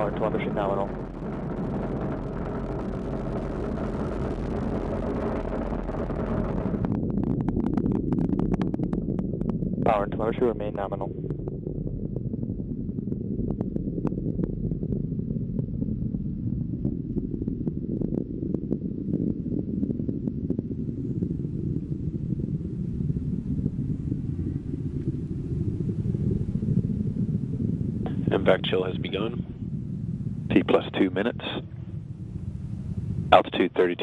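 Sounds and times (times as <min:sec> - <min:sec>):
crackles: 0:00.0 - 0:34.0
rocket engines rumbling: 0:00.0 - 0:34.0.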